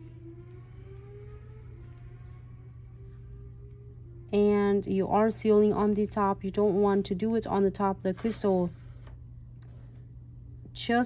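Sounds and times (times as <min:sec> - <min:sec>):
faint drawn-out tone: 0:00.0 - 0:07.0
steady low hum: 0:00.0 - 0:11.0.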